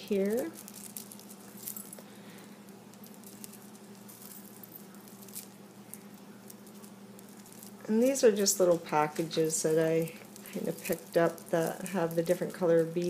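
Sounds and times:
low steady hum: 0.0s - 13.0s
beads clicking and rattling: 0.1s - 13.0s.

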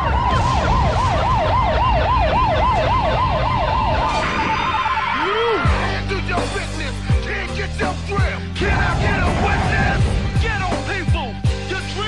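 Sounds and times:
siren yelping: 0.0s - 5.9s
low rumble: 8.6s - 10.9s.

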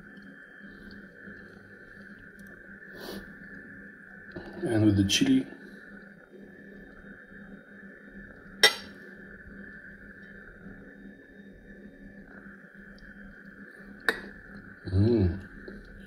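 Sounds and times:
faint steady background hum: 0.0s - 16.0s
metal fork clinking on plate: 8.6s - 8.9s.

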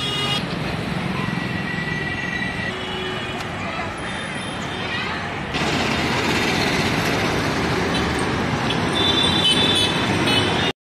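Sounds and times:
high-pitched vehicle horn: 0.0s - 0.4s
city street traffic: 0.0s - 10.8s.

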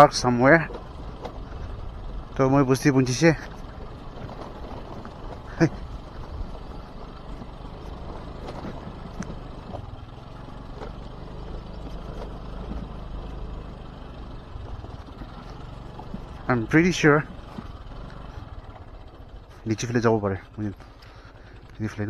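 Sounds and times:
road noise: 0.0s - 22.0s
scooter engine running: 0.0s - 22.0s.

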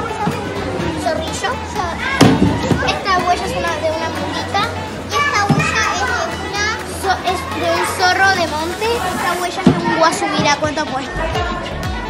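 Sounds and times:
young children talking and calling out: 0.0s - 12.0s.

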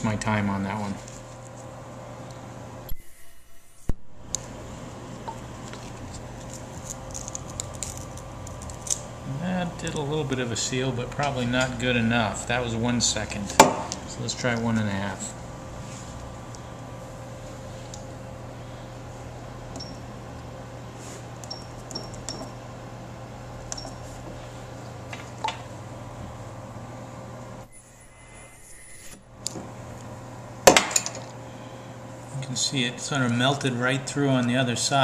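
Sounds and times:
steady background hum: 0.0s - 35.0s.

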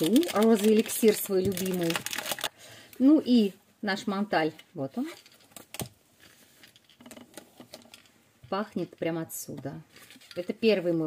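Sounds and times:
packaging taps and rustles: 0.0s - 2.5s.

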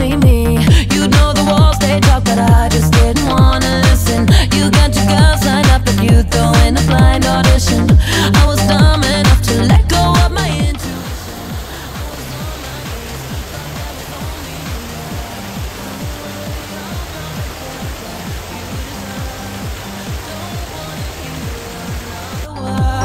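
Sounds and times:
electronic music kick drum beat: 0.2s - 23.0s
waterfall splashing over rocks: 10.9s - 22.5s.

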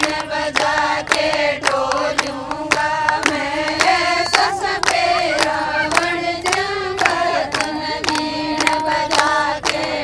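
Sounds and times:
hand claps: 0.0s - 10.0s
women singing folk song: 0.0s - 10.0s.

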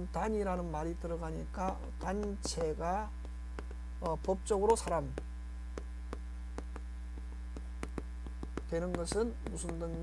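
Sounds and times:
electrical mains hum: 0.0s - 10.0s
chalk tapping and scraping on chalkboard: 1.2s - 10.0s.

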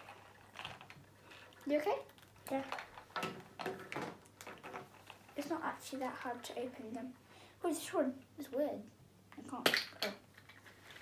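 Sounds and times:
girl speaking: 1.6s - 2.8s, 5.4s - 9.7s.

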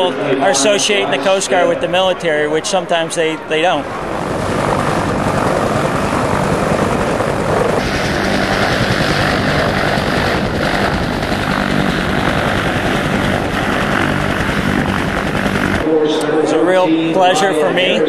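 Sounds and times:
helicopter lifting off: 0.0s - 18.0s.

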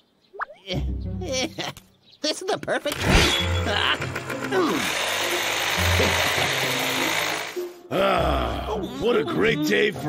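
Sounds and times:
background music: 0.6s - 10.0s
cartoon chainsaw buzzing: 2.9s - 7.7s.

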